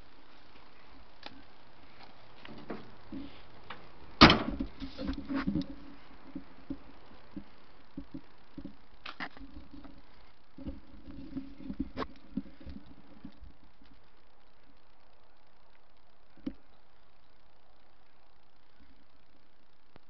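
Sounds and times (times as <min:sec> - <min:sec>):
rustling: 0:00.0 - 0:16.7.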